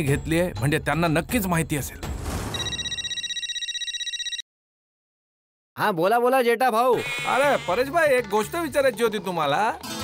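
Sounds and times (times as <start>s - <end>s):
mobile phone electronic trill: 2.6s - 4.4s.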